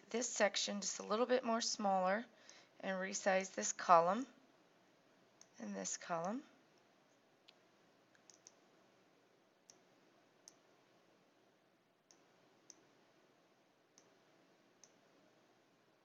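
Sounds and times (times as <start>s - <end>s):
faint computer mouse clicks: 7.5s - 8.6s, 14.8s - 15.0s.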